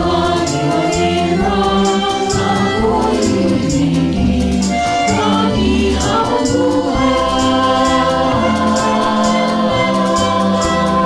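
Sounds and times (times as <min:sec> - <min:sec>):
bass line and light beat: 0:00.0 - 0:11.0
youth choir singing in harmony: 0:00.0 - 0:11.0.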